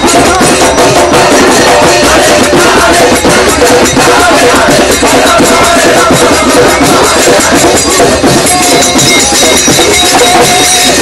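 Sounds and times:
group chanting: 0.0s - 8.9s
drums and percussion: 0.0s - 11.0s.

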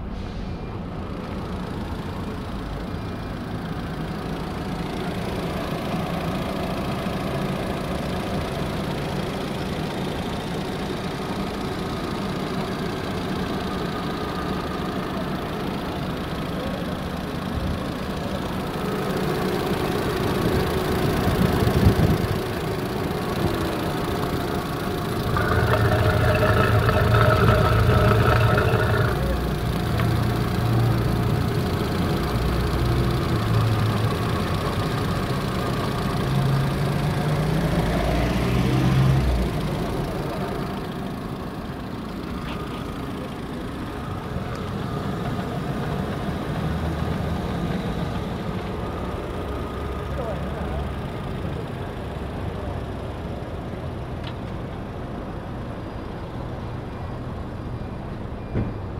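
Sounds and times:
car engine idling: 1.2s - 37.8s.

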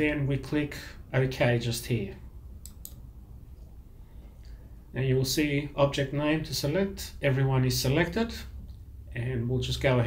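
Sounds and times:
computer mouse clicks: 2.6s - 3.0s.

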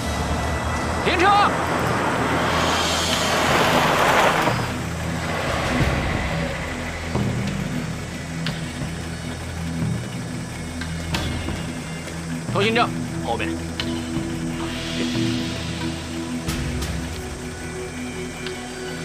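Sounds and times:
jeep engine idling: 0.0s - 18.8s.

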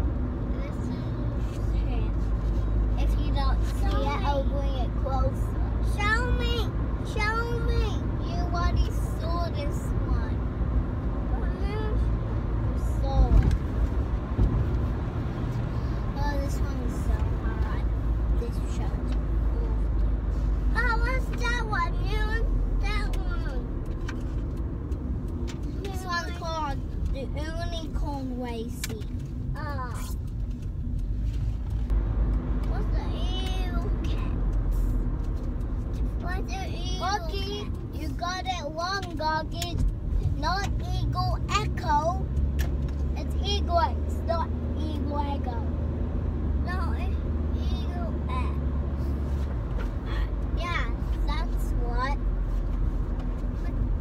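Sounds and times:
car road and engine rumble: 0.0s - 54.0s
young children's voices: 3.0s - 10.4s, 11.2s - 13.4s, 20.7s - 23.8s, 25.7s - 30.2s, 32.6s - 34.9s, 36.1s - 42.2s, 46.6s - 48.6s, 50.1s - 52.2s.

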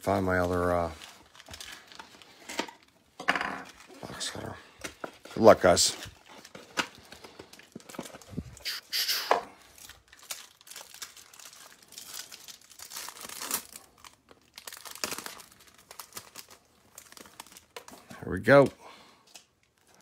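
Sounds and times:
foil wrapper tearing and crinkling: 0.3s - 2.4s, 8.6s - 17.9s
cards sliding out of pack: 8.6s - 9.4s.

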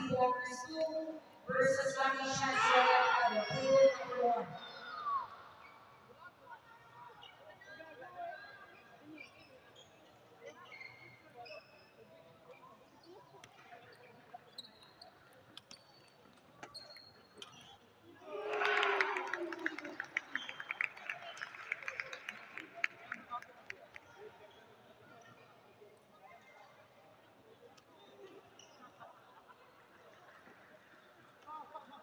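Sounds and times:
faint background chatter: 0.0s - 32.0s.

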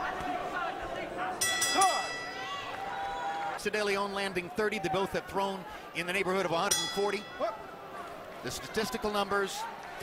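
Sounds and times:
arena crowd shouting: 0.0s - 10.0s
boxing ring bell: 1.4s - 2.6s, 6.7s - 7.6s.

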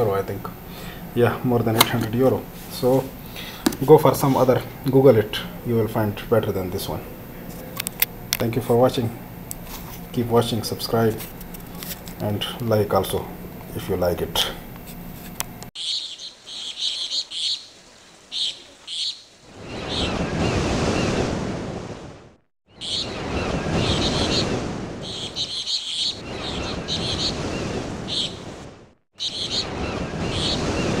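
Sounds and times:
birds chirping: 0.5s - 14.6s, 15.8s - 21.2s, 22.7s - 28.6s, 29.2s - 31.0s
wave-like wash: 29.4s - 31.0s.

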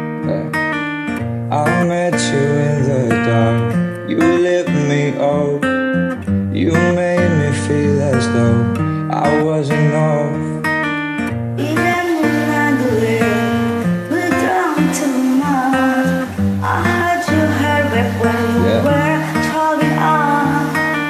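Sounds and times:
acoustic guitar: 0.0s - 21.0s
person singing pop ballad: 1.5s - 11.0s, 11.6s - 21.0s.

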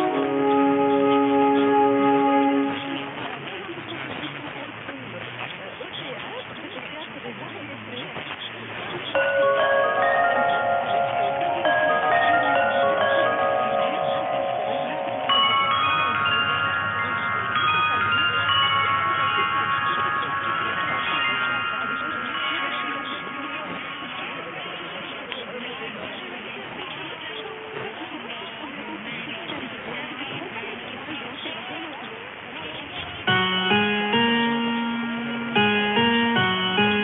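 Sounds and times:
muffled radio music chord: 0.0s - 4.4s, 9.1s - 25.4s, 33.3s - 37.0s.

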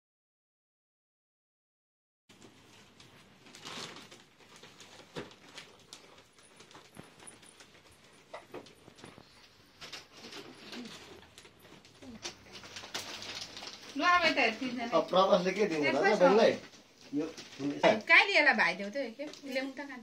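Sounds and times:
clicks and rustles of gift boxes: 2.3s - 18.2s, 18.8s - 20.0s.

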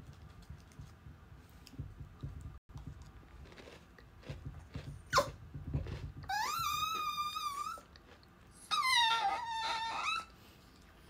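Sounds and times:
dog whining: 5.1s - 5.4s, 6.2s - 7.9s, 8.6s - 10.3s.

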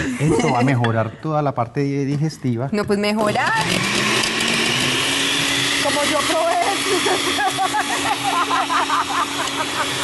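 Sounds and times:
blender whirring: 3.2s - 10.0s.

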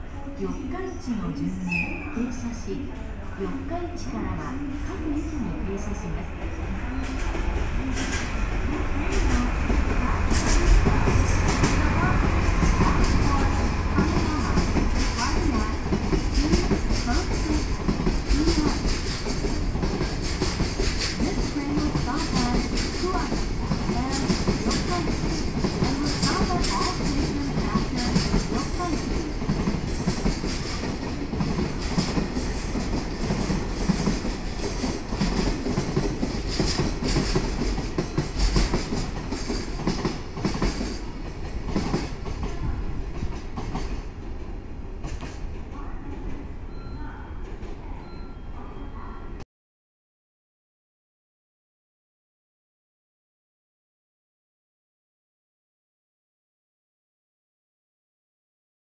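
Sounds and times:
freight train wagons rolling past: 6.5s - 48.5s
steel wheels clicking over rail joints: 10.3s - 42.6s.

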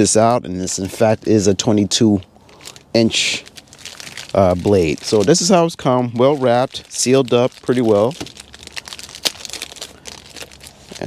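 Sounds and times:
plastic wrapping crinkling: 0.0s - 11.0s.

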